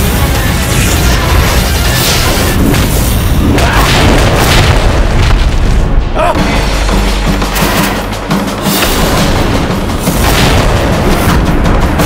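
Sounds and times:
dramatic background music: 0.0s - 12.0s
booming hits: 0.9s - 7.6s, 8.6s - 12.0s.

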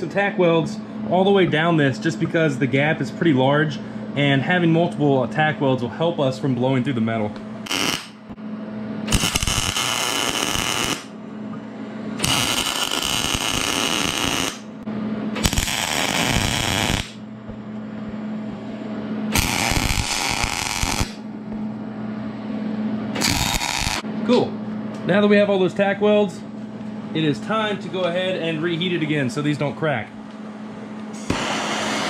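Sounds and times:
steady low hum: 0.0s - 32.0s
welder arc crackling: 7.6s - 8.4s, 9.1s - 11.1s, 12.2s - 14.7s, 15.4s - 17.2s, 19.3s - 21.2s, 23.2s - 24.0s, 31.2s - 32.0s.

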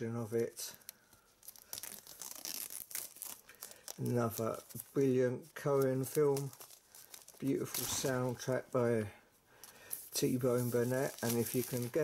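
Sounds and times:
plastic shrink-wrap crinkling: 0.6s - 8.6s, 9.7s - 12.0s.

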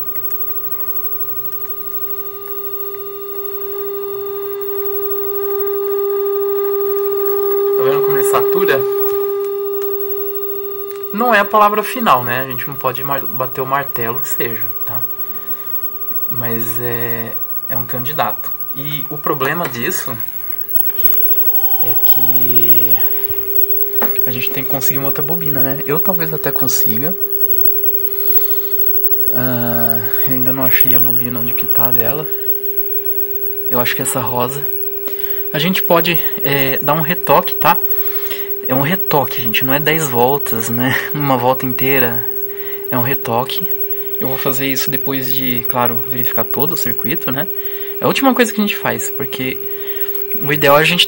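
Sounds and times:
faint hiss: 0.0s - 51.0s
sine-wave test tone: 0.0s - 51.0s.

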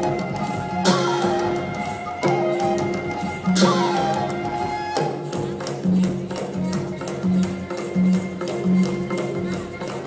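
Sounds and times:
live band playing chords: 0.0s - 10.0s
sharp percussion accent: 0.0s - 10.0s.

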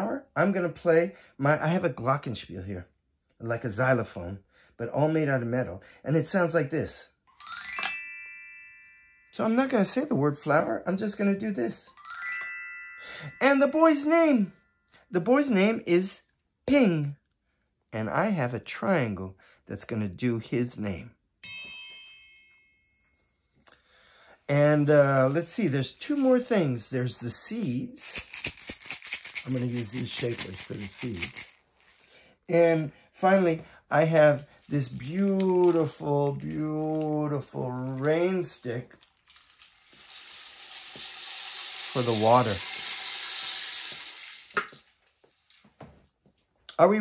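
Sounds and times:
rain stick hissing: 28.0s - 32.1s, 39.4s - 44.7s.

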